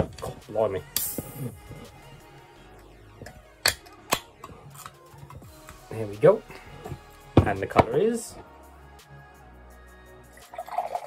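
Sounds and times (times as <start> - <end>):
drink pouring into a glass: 10.4 - 11.0.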